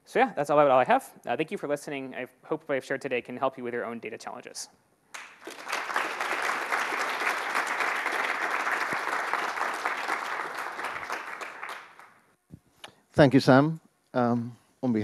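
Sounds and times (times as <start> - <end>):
audience applauding: 5.2 - 12.3.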